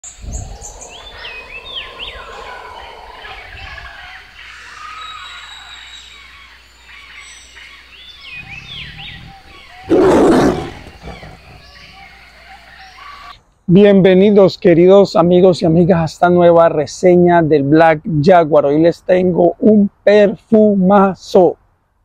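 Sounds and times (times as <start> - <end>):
birds chirping and whistling: 0.0 - 13.4
big cat roaring: 8.3 - 12.1.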